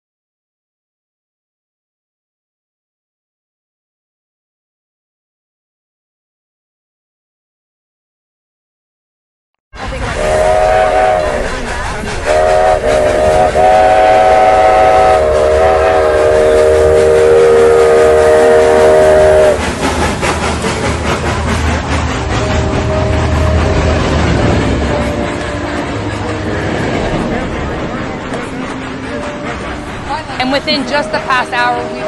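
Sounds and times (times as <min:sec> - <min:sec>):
moving train rumble and clatter: 0:09.8 - 0:32.0
train whistle blasts: 0:10.2 - 0:11.6, 0:12.3 - 0:19.6.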